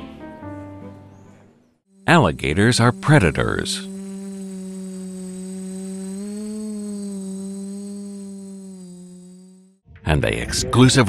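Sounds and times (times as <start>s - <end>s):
drone propellers buzzing: 1.9s - 9.8s.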